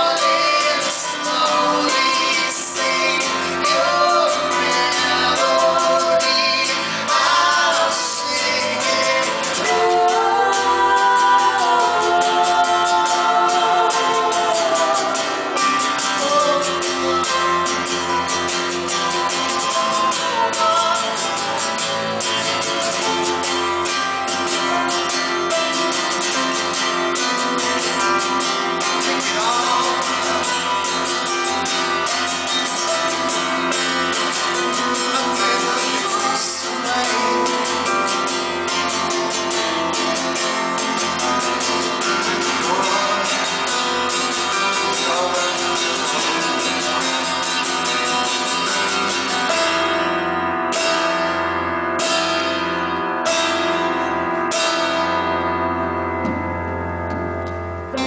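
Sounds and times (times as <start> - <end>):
person singing: 0.0 - 51.2
acoustic guitar strumming: 0.0 - 58.0
piano: 0.0 - 58.0.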